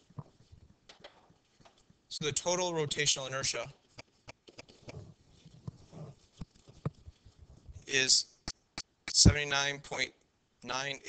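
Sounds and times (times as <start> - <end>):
faint sharp clicks and taps: 3.9 - 9.4.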